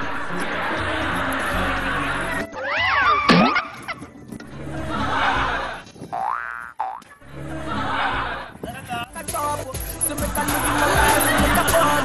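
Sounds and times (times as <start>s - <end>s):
background music: 0.0s - 6.4s, 7.2s - 12.0s
cartoon boing sound effect: 3.2s - 3.8s, 6.2s - 7.0s.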